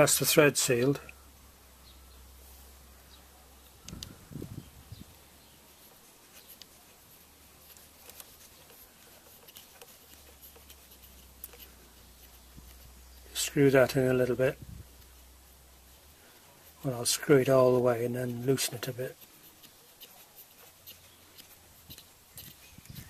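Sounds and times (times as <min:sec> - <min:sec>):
steady low hum: 0:00.7 - 0:18.4.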